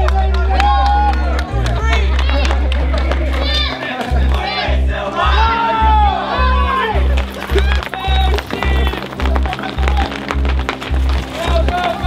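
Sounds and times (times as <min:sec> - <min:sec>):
crowd shouting and cheering: 0:00.0 - 0:12.0
music with heavy bass line: 0:01.2 - 0:12.0.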